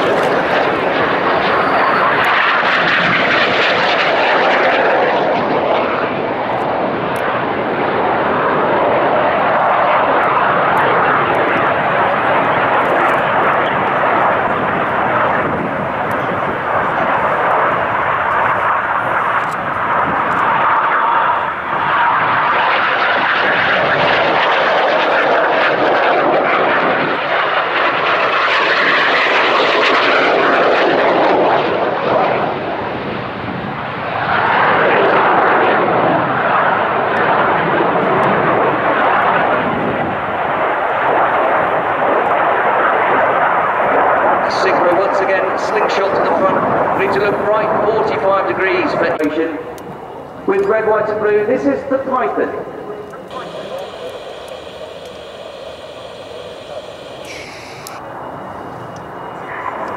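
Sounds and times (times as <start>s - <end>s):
jet engines rushing: 0.0s - 59.9s.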